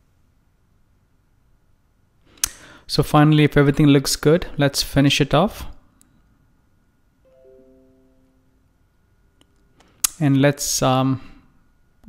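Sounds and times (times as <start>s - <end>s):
faint mallet chime: 7.3s - 8.8s.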